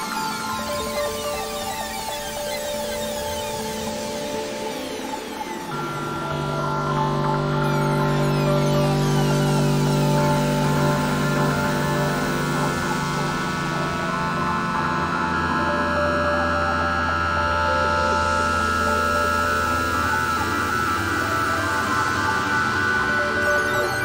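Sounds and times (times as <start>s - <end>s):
ambient synthesizer music: 0.0s - 24.0s.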